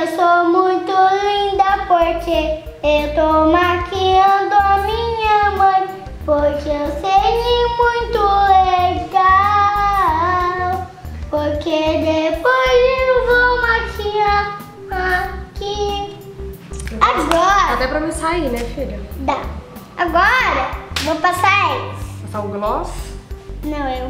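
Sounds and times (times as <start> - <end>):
child singing: 0.0 - 16.3
music with low accompaniment: 0.0 - 24.0.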